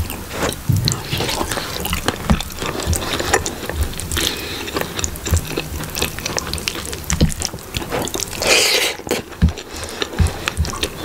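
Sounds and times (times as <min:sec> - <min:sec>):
wet squelching of food by hand: 0:00.1 - 0:11.0.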